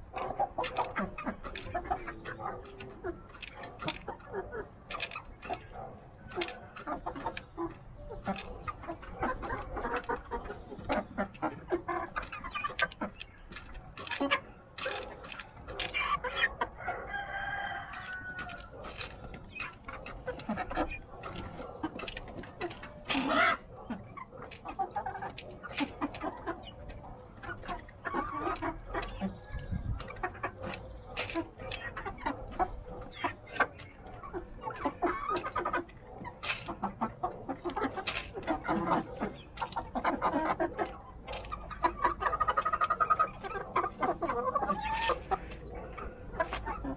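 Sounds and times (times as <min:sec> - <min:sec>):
chickens clucking softly: 0:00.0 - 0:46.9
chickens pecking taps: 0:00.0 - 0:46.9.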